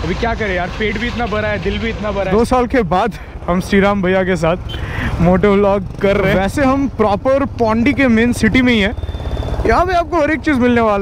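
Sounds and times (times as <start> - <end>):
man talking: 0.0 - 9.0, 9.6 - 11.0
motorcycle engine rumble: 0.0 - 11.0.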